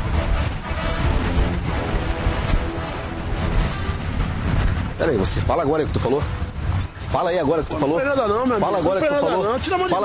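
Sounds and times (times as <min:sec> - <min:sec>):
music with deep bass: 0:00.0 - 0:05.3.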